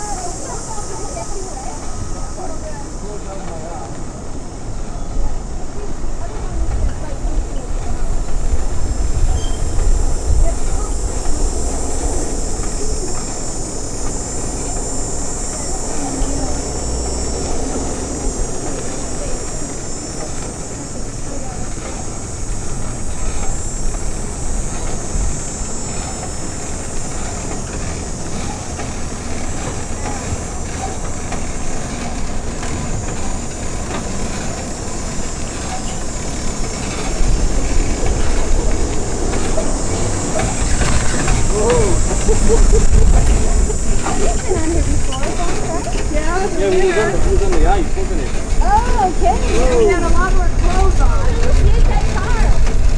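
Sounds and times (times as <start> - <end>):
steady high hiss: 0.0 - 52.9
vehicle rumbling over concrete: 0.0 - 52.9.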